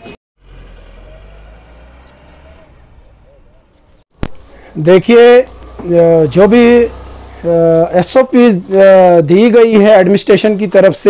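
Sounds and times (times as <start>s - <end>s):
vehicle engine idling: 0.4s - 9.4s.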